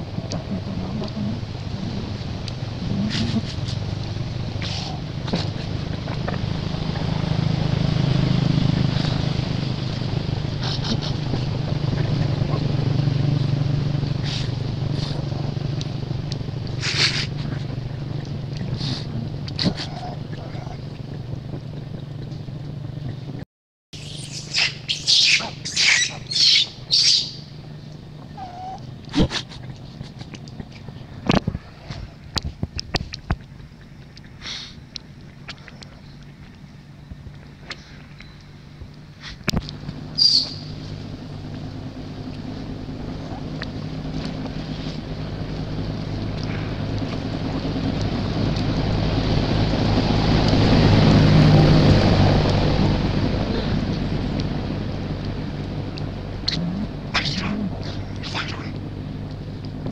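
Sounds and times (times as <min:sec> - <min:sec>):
vehicle engine humming: 0:00.0 - 0:23.4, 0:24.0 - 0:59.9
infant monkey screaming: 0:04.6 - 0:05.1, 0:16.8 - 0:17.4, 0:24.0 - 0:27.5, 0:28.4 - 0:29.5, 0:40.2 - 0:40.8, 0:56.5 - 0:58.8
short high squeal: 0:24.0 - 0:27.4.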